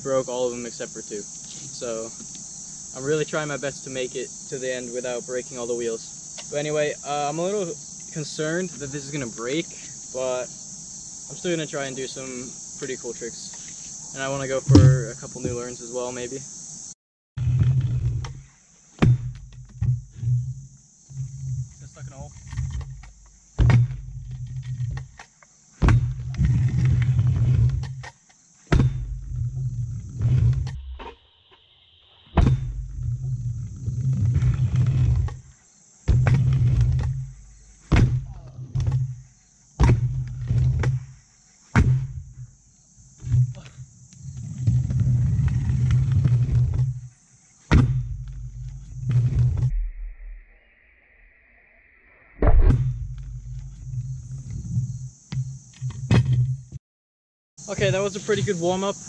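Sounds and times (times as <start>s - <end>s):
steady high hiss: 0.0s - 17.0s, 57.6s - 59.0s
scooter wheel rumble: 25.8s - 28.1s, 32.7s - 35.5s, 36.1s - 39.2s, 43.2s - 47.1s
scooter landing clacks on ramp: 27.7s - 29.2s.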